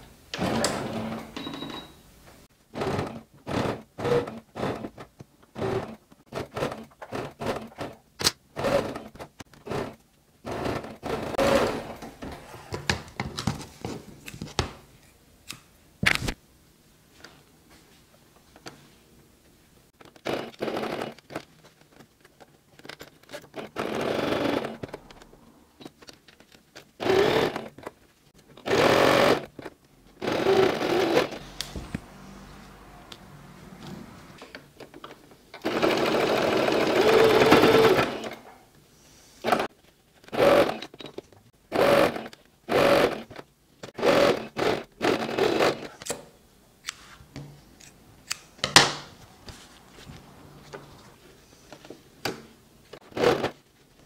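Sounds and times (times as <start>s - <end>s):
electric sewing machine stitching: 0.4s - 1.3s, 2.7s - 8.0s, 8.6s - 12.2s, 20.0s - 21.4s, 23.5s - 25.1s, 27.0s - 27.7s, 28.6s - 29.6s, 30.2s - 31.6s, 35.6s - 38.4s, 40.3s - 40.9s, 41.7s - 45.9s, 53.0s - 53.6s.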